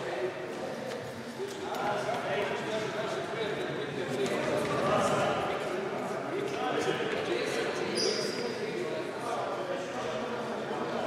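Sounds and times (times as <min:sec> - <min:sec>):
echoing chatter of voices: 0:00.0 - 0:11.0.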